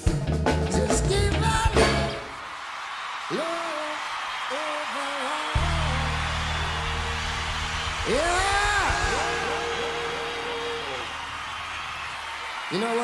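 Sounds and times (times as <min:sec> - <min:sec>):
crowd cheering and whooping: 0:02.1 - 0:13.0.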